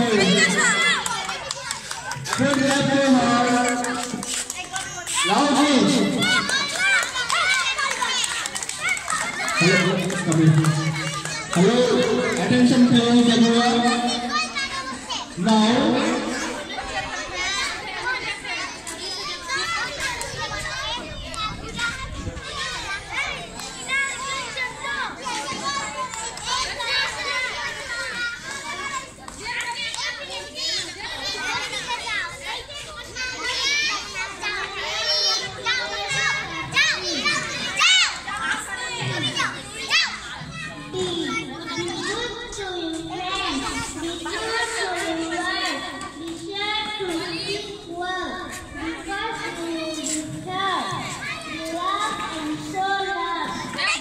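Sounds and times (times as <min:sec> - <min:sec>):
young children chattering: 0:00.0 - 0:54.0.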